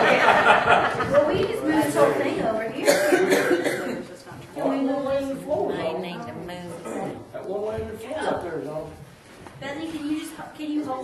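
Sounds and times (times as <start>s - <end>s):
person coughing: 2.8s - 4.0s.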